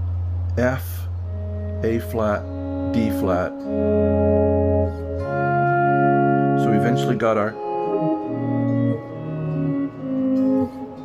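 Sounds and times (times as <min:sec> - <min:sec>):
clean electric guitar chords: 0:01.1 - 0:11.0.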